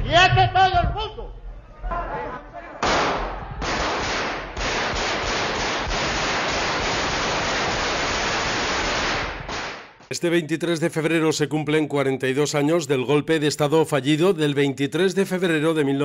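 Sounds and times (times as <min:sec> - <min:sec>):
automatic gunfire: 0:02.8 - 0:09.9.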